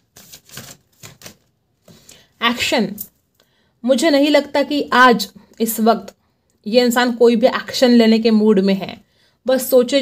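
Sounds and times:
cards being shuffled: 0.0s - 2.0s.

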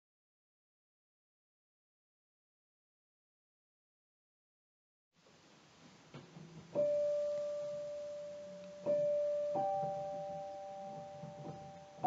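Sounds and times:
solo piano notes: 6.1s - 12.0s.

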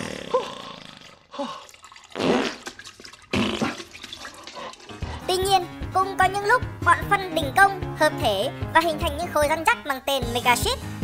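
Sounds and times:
wet fart sounds: 0.0s - 5.2s.

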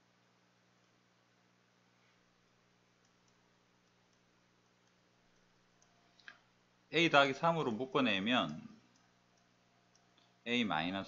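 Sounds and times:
electrical hum: 0.0s - 11.0s
stylus ticking on drawing tablet: 3.0s - 6.0s.

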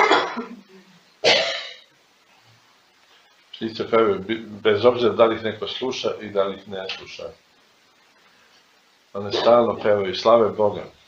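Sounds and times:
man coughing: 9.2s - 9.8s.

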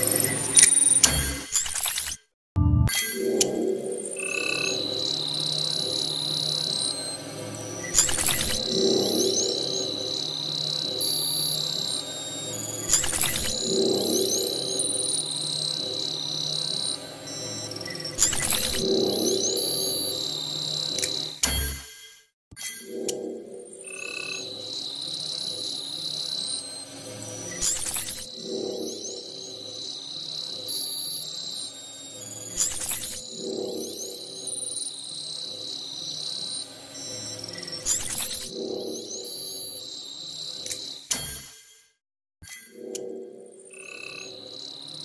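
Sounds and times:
steady high tone: 2.6s - 7.6s, 22.8s - 26.2s, 42.8s - 45.0s
electronic music with pulsing tone: 2.6s - 21.4s, 22.8s - 26.4s, 27.1s - 40.7s, 42.7s - 45.0s
low warbling croak-like sound: 2.8s - 6.8s, 22.8s - 25.3s, 42.7s - 45.0s
click: 21.0s - 21.6s, 40.6s - 41.4s.

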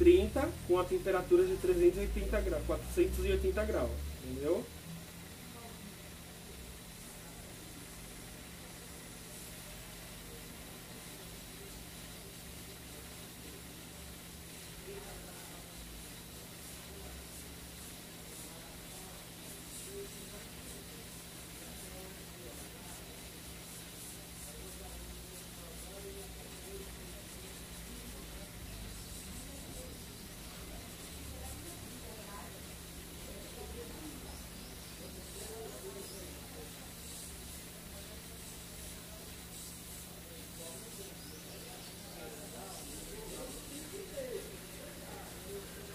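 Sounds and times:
hot air station hissing: 0.0s - 45.9s.

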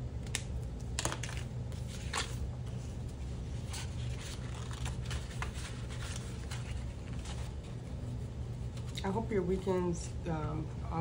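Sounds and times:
low steady hum: 0.0s - 11.0s
paper money and plastic crinkling: 0.2s - 2.8s, 3.5s - 7.9s.

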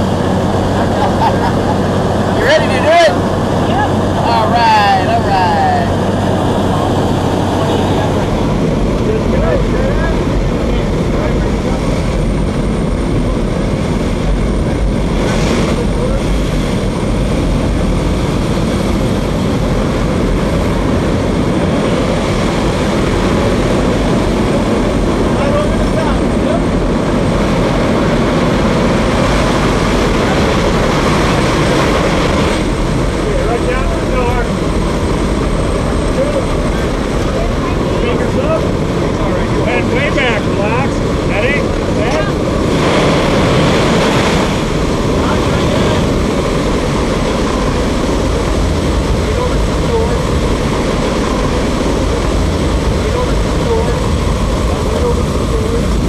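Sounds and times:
propeller plane engine: 0.0s - 56.0s
wind rushing through open door: 0.0s - 56.0s.

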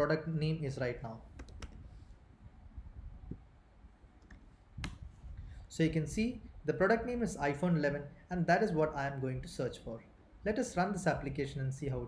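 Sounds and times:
keyboard and mouse clicks: 1.3s - 1.8s.

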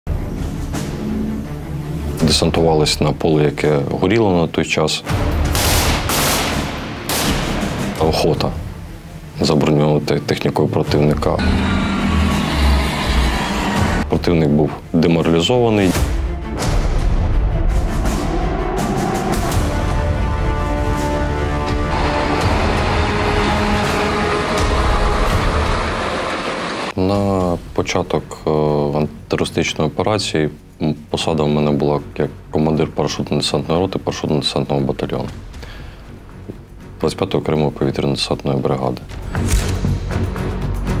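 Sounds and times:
music: 0.1s - 41.0s
automatic rifle fire: 5.5s - 7.7s
road noise: 11.2s - 14.1s, 20.1s - 27.0s
truck engine rumble: 21.5s - 27.0s.

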